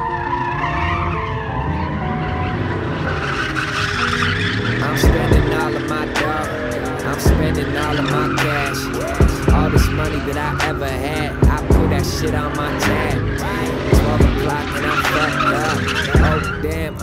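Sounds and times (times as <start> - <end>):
car tyres squealing: 0.0 - 17.0
music with drum beat: 5.0 - 7.6, 8.4 - 12.0, 13.7 - 15.2, 16.2 - 16.4.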